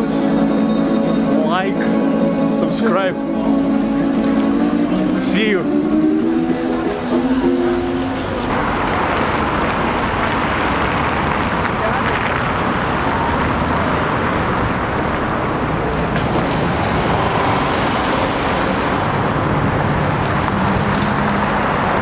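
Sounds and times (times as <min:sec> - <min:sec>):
cars driving past: 0:00.0 - 0:22.0
trolleybus driving past: 0:00.0 - 0:22.0.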